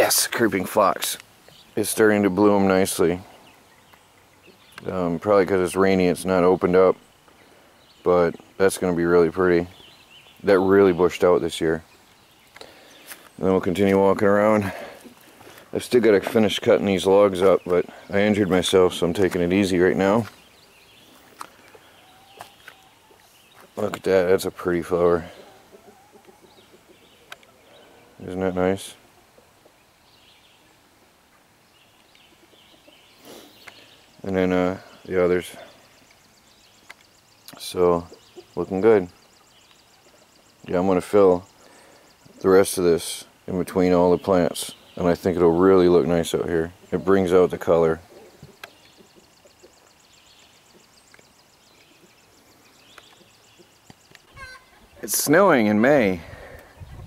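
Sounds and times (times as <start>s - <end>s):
distant bird chirps: 0.0s - 57.0s
faint outdoor ambience: 0.0s - 57.0s
chicken call: 54.3s - 54.9s.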